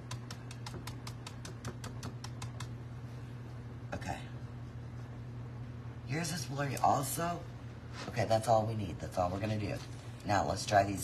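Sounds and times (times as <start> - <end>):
stencil brush tapping: 0.0 - 2.8
steady low hum: 0.0 - 11.0.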